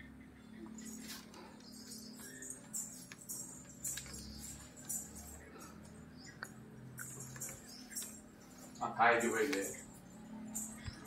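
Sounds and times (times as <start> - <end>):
light metallic jingling: 0.8 - 11.0.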